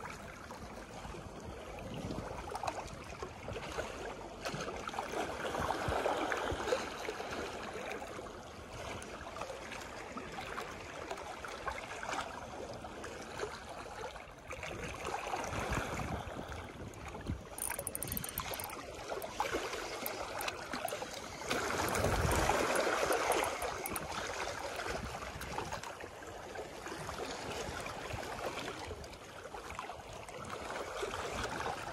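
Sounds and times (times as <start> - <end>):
water lapping against rocks: 1.4 - 31.9
fishing reel winding: 17.5 - 24.9.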